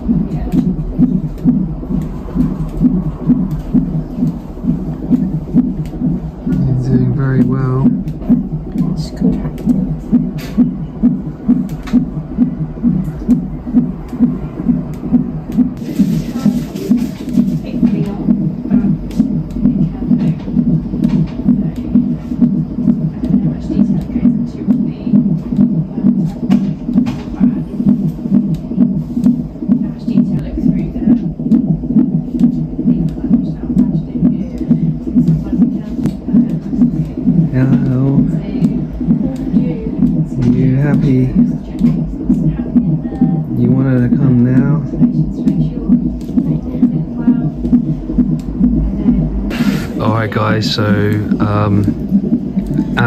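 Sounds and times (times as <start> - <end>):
fetal heartbeat on monitor: 0.0 - 53.0.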